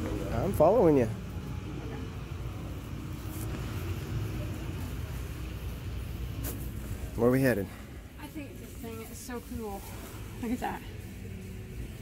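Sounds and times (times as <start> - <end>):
shopping cart rolling: 2.0 - 12.0.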